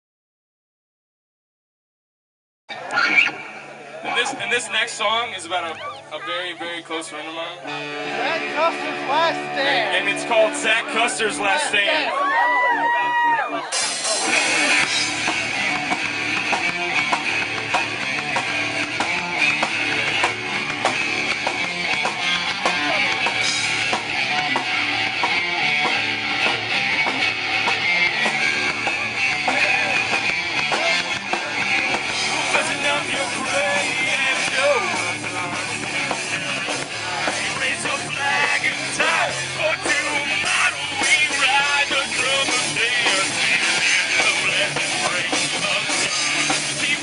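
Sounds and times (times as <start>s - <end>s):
bass guitar: 2.7s - 47.0s
electric guitars: 2.7s - 47.0s
drum kit: 12.9s - 47.0s.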